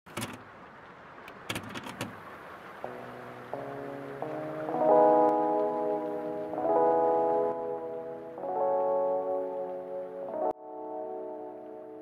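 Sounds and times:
clicks and rustles: 0.1 - 0.5, 1.3 - 2.2
keyboard chords music: 2.8 - 12.0.

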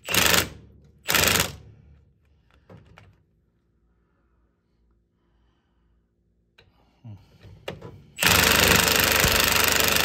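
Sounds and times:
impact wrench hammering: 8.2 - 10.0.

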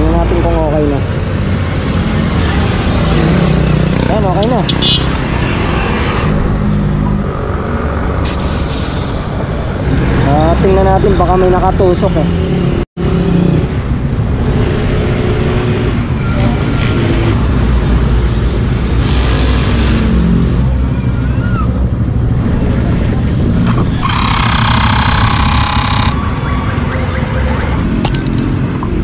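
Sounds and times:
roadside traffic rumble: 0.0 - 29.0
high-pitched passing vehicle: 23.9 - 27.9.

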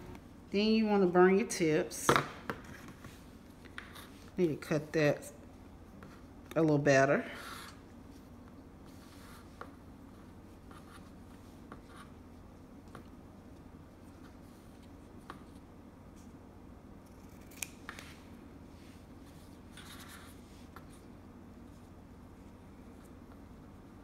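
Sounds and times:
faint room hum: 0.0 - 24.0.

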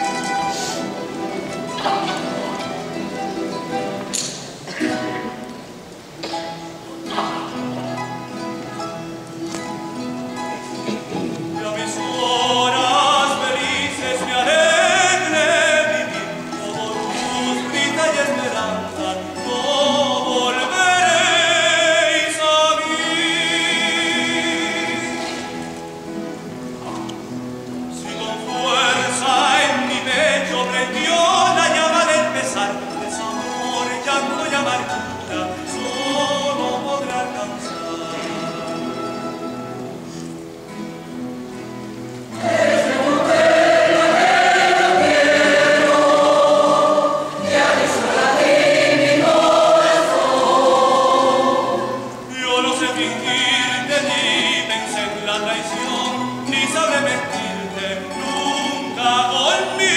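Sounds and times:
plucked string instruments: 0.0 - 59.9
mixed choir singing: 11.7 - 25.6, 42.3 - 54.8
plucked string ensemble tremolo: 42.3 - 57.5.

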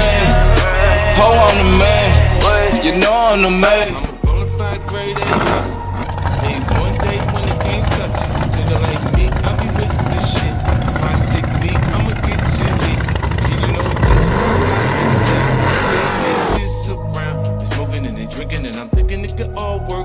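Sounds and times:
drag car engine revving: 0.0 - 16.8.

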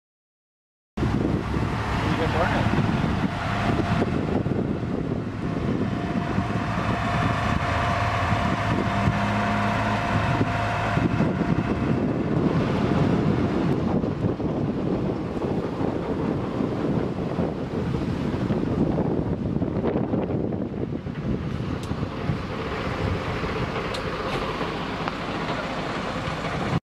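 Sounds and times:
van driving past: 1.0 - 17.1
road traffic: 1.0 - 26.8
wind buffeting microphone: 1.0 - 26.8.

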